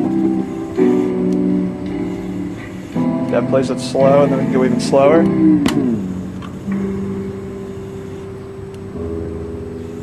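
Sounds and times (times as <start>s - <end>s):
slowed tape music droning: 0.0s - 10.0s.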